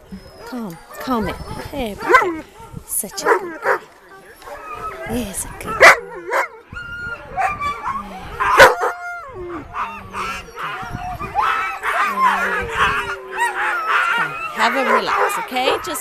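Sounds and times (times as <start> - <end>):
dogs barking and howling: 0.0 - 16.0.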